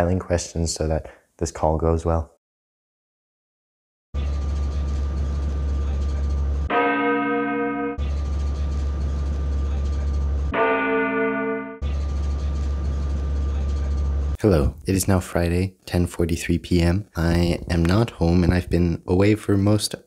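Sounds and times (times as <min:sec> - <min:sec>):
ringing bell chime: 0:06.7 - 0:08.0, 0:10.5 - 0:11.8.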